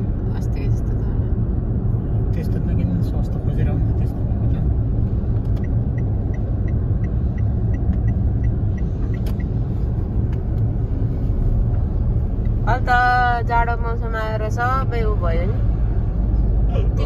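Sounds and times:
car engine and road rumble: 0.0s - 17.0s
light regular ticking: 5.3s - 10.7s.

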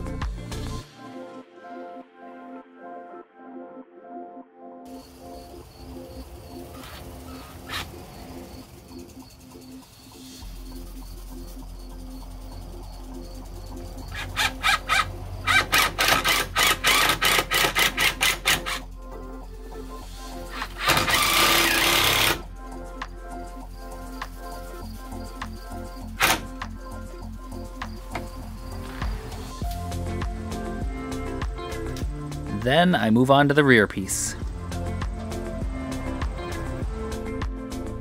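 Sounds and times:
background music: 0.0s - 38.0s
drill clicking: 14.4s - 18.8s, 20.5s - 22.5s, 26.2s - 26.5s
cordless drill driving screws: 14.6s - 18.8s, 20.5s - 22.4s.

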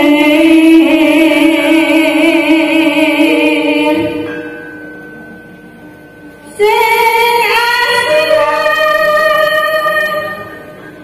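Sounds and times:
woman singing long notes: 6.5s - 10.6s.

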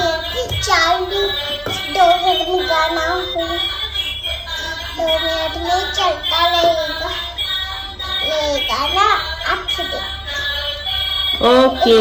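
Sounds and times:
electronic children's song: 0.0s - 12.0s.

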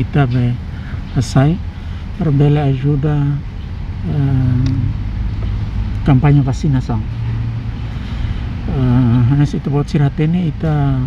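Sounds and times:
low rumble with constant hum: 0.0s - 11.0s
man's voice: 2.2s - 3.4s, 4.0s - 5.0s, 8.7s - 11.0s.

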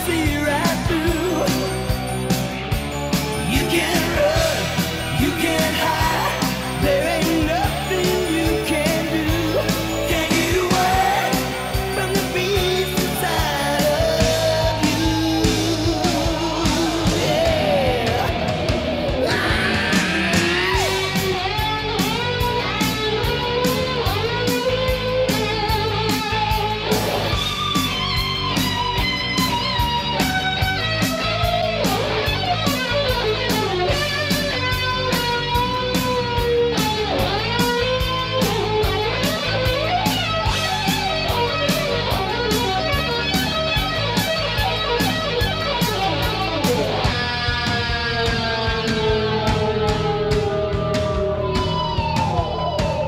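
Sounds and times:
electric guitar bending melody: 0.0s - 53.0s
steady drum beat: 0.0s - 53.0s.

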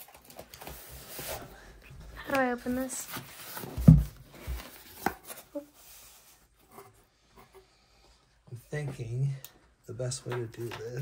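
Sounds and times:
cardboard box handled and opened: 2.3s - 6.4s.

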